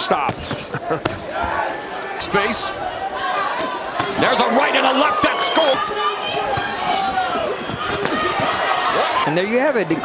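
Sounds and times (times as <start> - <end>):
crowd noise: 0.0 - 10.0
voices: 0.0 - 10.0.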